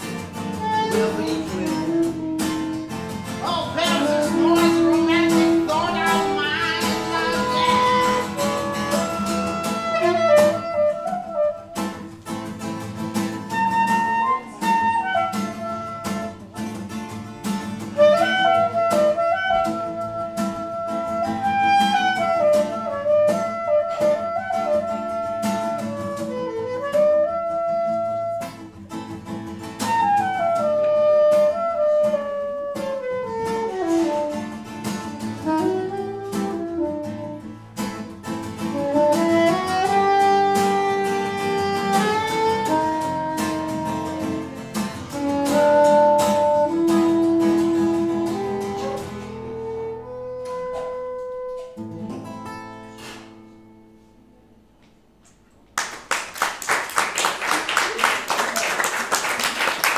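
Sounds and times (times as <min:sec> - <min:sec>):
saxophone playing jazz melody: 0:00.0 - 0:52.1
acoustic guitar accompaniment: 0:00.0 - 0:59.9.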